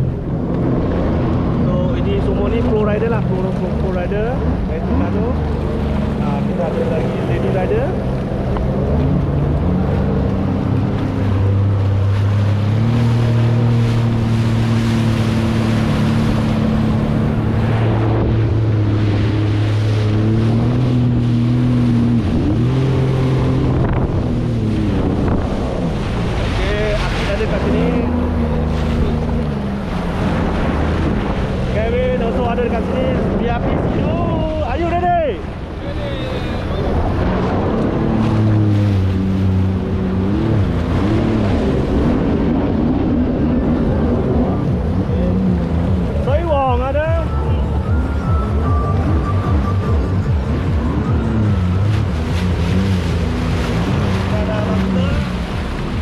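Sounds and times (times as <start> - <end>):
jet ski engine: 0.0 - 56.0
water rushing and spraying: 0.0 - 56.0
wind buffeting microphone: 4.4 - 48.4.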